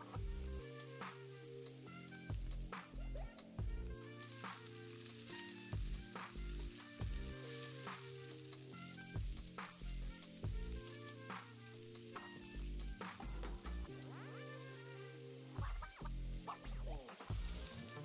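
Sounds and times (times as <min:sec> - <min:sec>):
background music with low beat: 0:00.0 - 0:18.0
rice sizzling in oil: 0:00.0 - 0:18.0.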